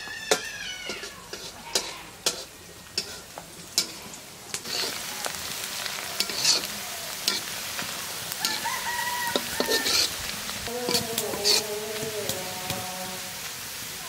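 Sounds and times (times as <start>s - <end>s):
metal spatula scraping wok: 0.0s - 13.3s
onions sizzling in oil: 0.0s - 14.0s
rooster crowing: 8.3s - 13.3s.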